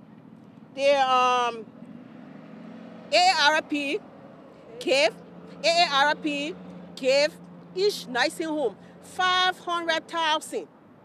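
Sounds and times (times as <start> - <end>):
low traffic hum: 0.0 - 11.0.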